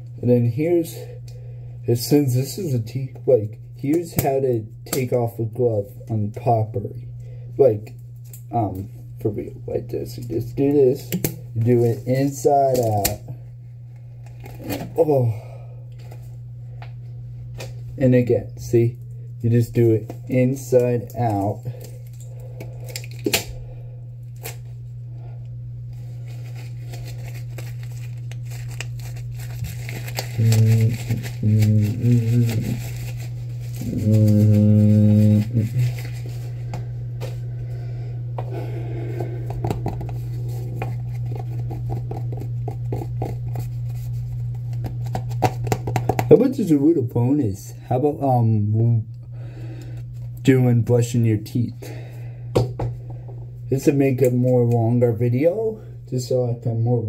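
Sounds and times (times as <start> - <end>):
low room hum: 0.0 - 57.0
latex glove crinkling: 25.9 - 37.4, 40.0 - 46.0
man humming: 30.3 - 33.1, 33.8 - 36.2.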